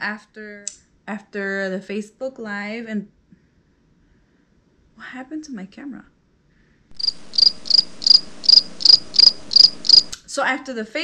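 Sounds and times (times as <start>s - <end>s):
high-pitched repeated chirp: 7.0s - 10.1s.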